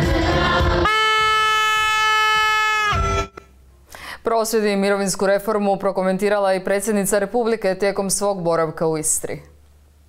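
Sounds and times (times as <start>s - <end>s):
air horn blast: 0.7s - 3.4s.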